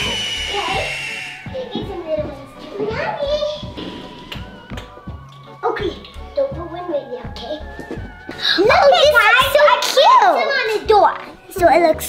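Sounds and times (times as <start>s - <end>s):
high-pitched squeal: 0.0s - 1.8s
girls calling and chattering: 0.0s - 3.8s
background music: 0.0s - 12.0s.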